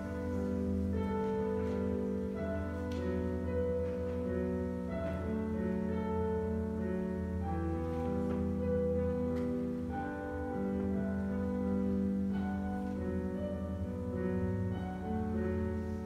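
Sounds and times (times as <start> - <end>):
slow classical instrumental music: 0.0 - 16.0.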